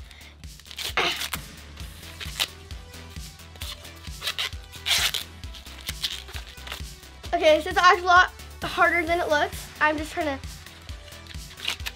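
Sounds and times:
background music: 0.0s - 11.9s
corn husks tearing and rustling: 0.6s - 1.4s, 2.2s - 2.5s, 3.6s - 6.8s, 11.2s - 11.9s.

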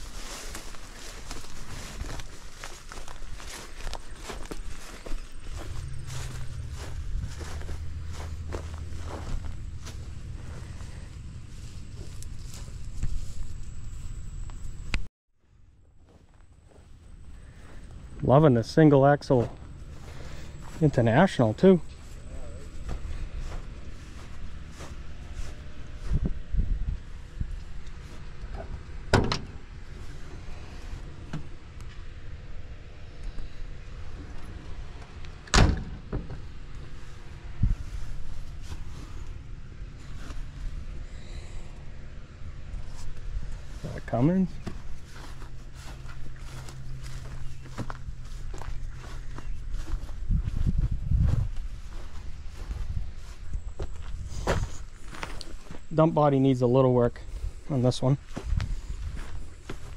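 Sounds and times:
low rumble of walking: 0.0s - 15.1s, 15.7s - 56.2s, 57.1s - 59.9s
steady low hum: 0.0s - 59.9s.

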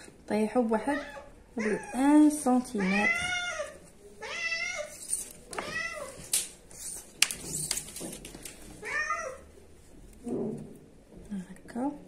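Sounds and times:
cat meowing: 2.8s - 6.3s, 8.8s - 9.5s.

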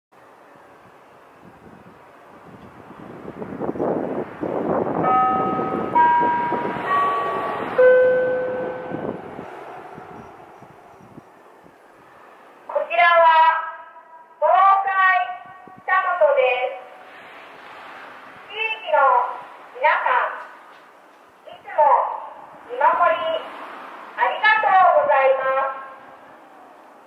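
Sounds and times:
rushing noise: 2.2s - 12.8s, 16.7s - 20.9s
loudspeaker chime: 5.1s - 9.0s.

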